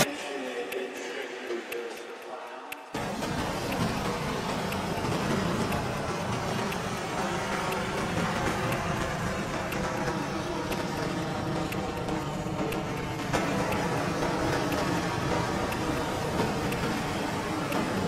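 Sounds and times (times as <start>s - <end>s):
rocket engines roaring: 3.0s - 18.0s.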